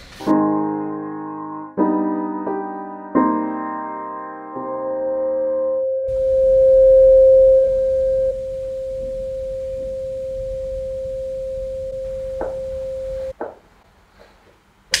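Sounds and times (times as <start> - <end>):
steady pure tone: 6.1 - 13.4.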